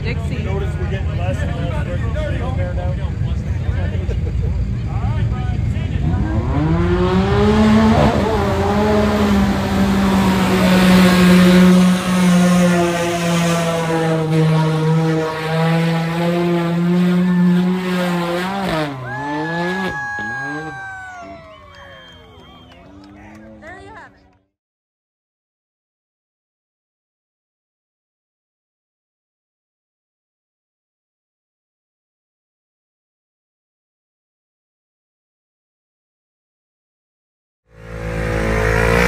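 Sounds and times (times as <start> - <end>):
engine revving in mud: 5.9 - 22.7, 37.7 - 39.0.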